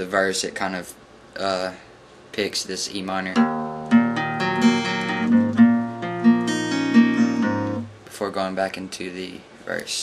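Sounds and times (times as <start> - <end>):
acoustic guitar picking chord: 3.4 - 8.0.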